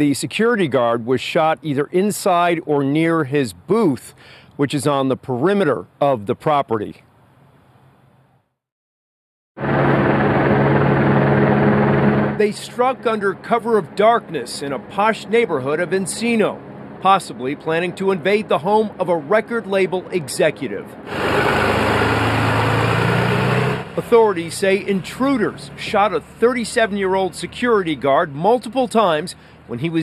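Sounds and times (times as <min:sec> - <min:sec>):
helicopter rotor beating: 0:09.6 - 0:19.8, 0:21.1 - 0:28.0
engine running low hum: 0:09.6 - 0:30.0.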